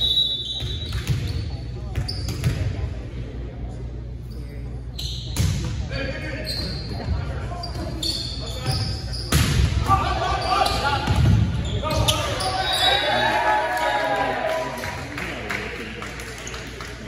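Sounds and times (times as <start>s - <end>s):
players shouting: 9.8s - 15.2s.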